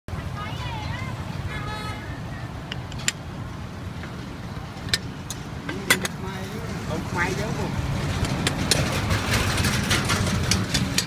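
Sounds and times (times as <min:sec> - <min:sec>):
distant voices: 0:00.1 - 0:11.0
low rumble of street traffic: 0:00.1 - 0:11.0.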